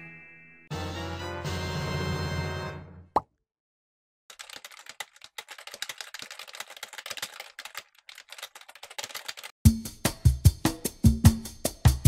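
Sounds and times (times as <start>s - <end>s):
computer keyboard typing: 4.3s - 9.6s.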